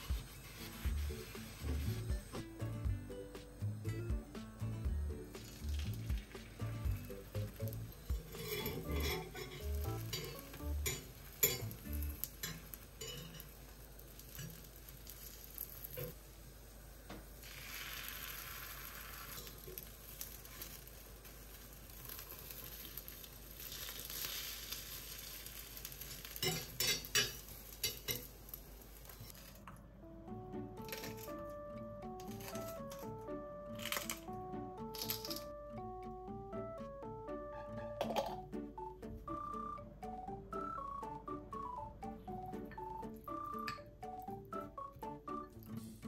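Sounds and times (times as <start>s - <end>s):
egg sizzling in a pan: 0.0s - 29.7s, 30.8s - 31.5s
metal chopsticks scraping a pan: 0.1s - 2.1s, 8.2s - 13.6s, 22.1s - 28.3s.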